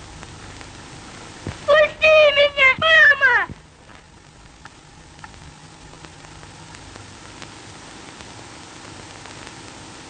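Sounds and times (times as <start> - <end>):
faint film soundtrack hiss: 0.0 - 10.0
person wailing cry: 1.7 - 3.5.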